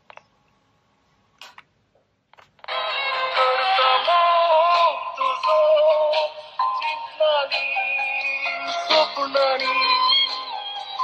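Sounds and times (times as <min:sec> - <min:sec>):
song from tinny cassette speaker: 0:02.6 - 0:11.0.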